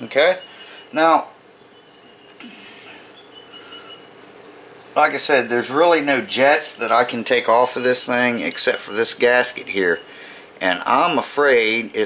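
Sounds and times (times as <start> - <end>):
faint high bird chirps: 0.0 - 5.0.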